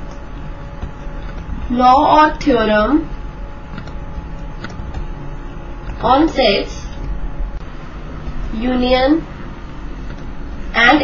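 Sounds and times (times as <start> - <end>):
low background rumble and hiss: 0.0 - 11.0.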